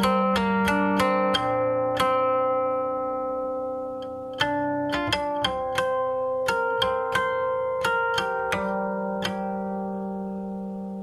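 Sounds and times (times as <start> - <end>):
zither note plucked: 0.0 - 11.0.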